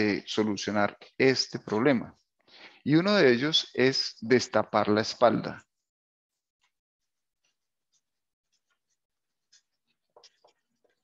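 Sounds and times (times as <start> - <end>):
marker pen scratching on paper: 6.6 - 11.0.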